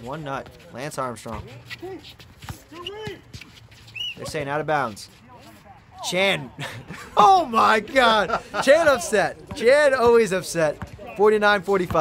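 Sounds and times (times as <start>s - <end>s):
players calling out: 0.0s - 12.0s.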